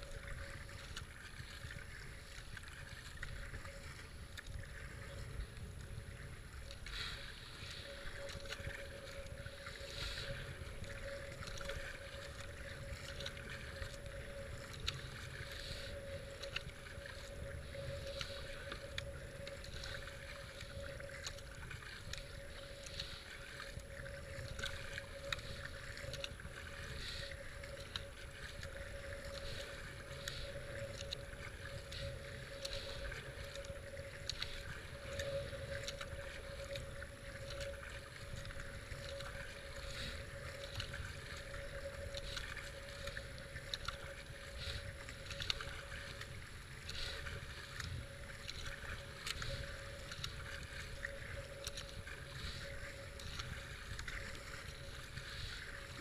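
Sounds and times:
low wind rumble: 0.0s - 56.0s
paddle strokes splashing water: 0.0s - 56.0s
rushing river water: 0.0s - 56.0s.

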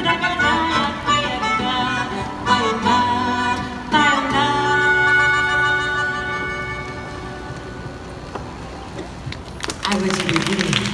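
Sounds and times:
melodica chord: 0.0s - 8.0s.

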